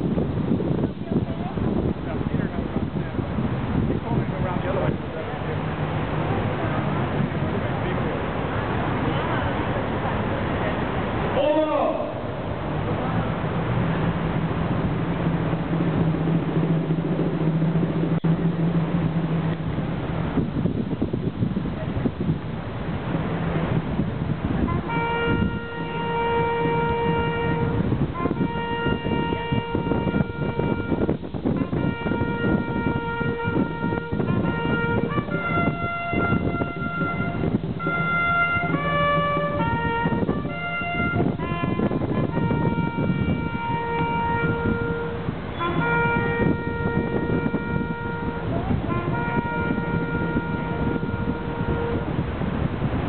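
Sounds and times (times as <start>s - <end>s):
low background rumble: 0.0s - 53.0s
bugle long note: 24.6s - 52.2s
brass horn call: 24.6s - 52.6s.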